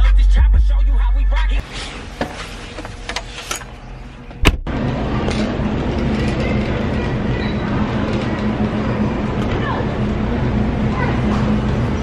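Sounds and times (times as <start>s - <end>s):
shopping cart wheels rumbling: 4.7s - 12.0s.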